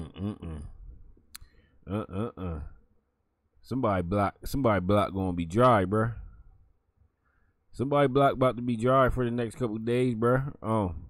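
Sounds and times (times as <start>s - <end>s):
man chuckling: 0.0s - 0.9s, 1.9s - 2.8s
sharp click: 1.3s - 1.5s.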